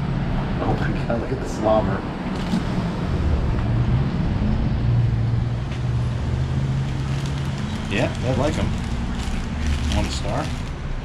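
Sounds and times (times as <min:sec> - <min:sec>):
road noise: 0:00.0 - 0:11.0
vehicle engine running: 0:02.1 - 0:11.0.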